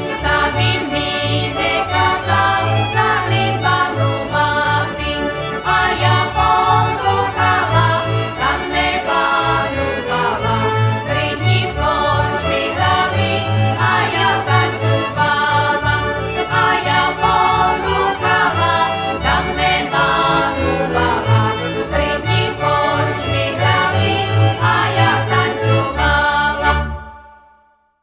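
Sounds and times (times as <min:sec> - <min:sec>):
accordion folk band: 0:00.0 - 0:27.8.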